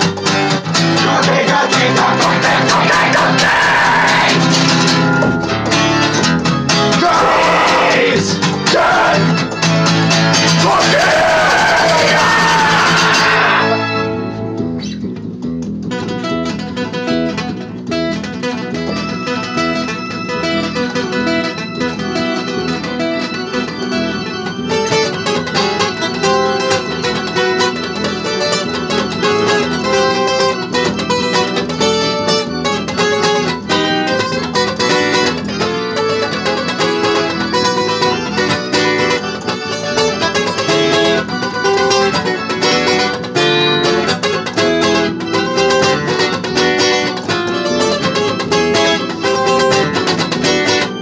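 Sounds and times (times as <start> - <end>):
acoustic guitar strumming and picking: 0.0 - 51.0.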